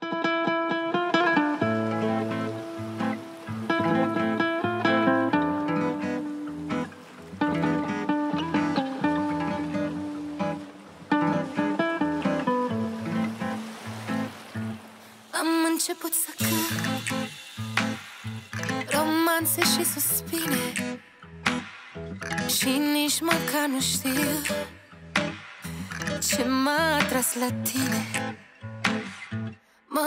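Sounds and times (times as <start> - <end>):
classical guitar melody: 0.0 - 14.9.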